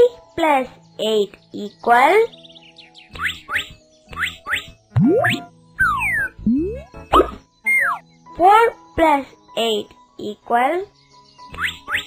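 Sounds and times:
light children's music: 0:00.0 - 0:12.0
cartoon rising chirps: 0:05.0 - 0:07.3
cartoon boing glide: 0:05.0 - 0:07.4.

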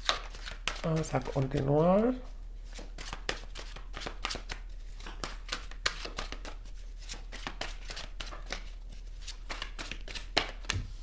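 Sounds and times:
cards being shuffled: 0:00.0 - 0:01.8, 0:02.7 - 0:11.0.

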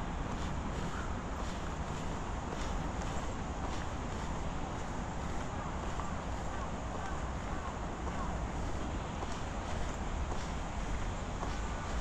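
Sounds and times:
faint bird calls: 0:00.8 - 0:01.2.

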